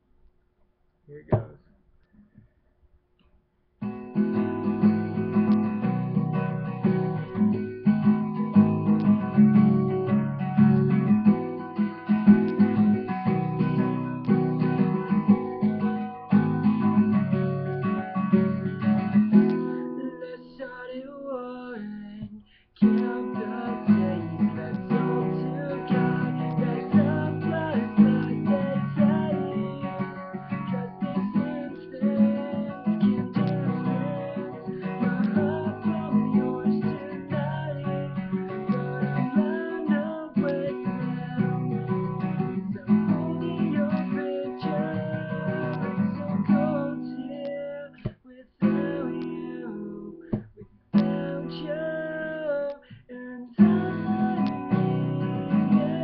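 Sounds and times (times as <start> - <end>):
acoustic guitar strumming: 3.8 - 52.9, 53.5 - 56.0
man singing: 19.6 - 56.0.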